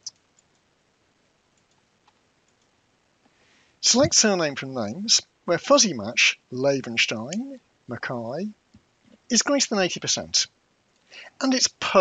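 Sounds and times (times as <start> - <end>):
computer mouse clicks: 0.1 - 0.7, 1.5 - 2.7.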